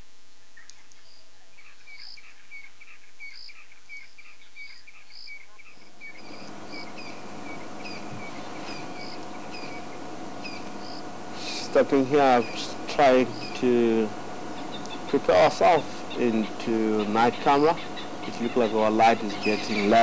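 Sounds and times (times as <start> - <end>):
small animals chirping: 0.6 - 20.0.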